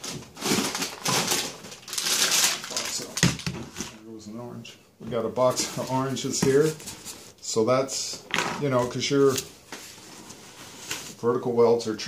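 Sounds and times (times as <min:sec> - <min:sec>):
cardboard box rustling and scraping: 0:09.8 - 0:11.2.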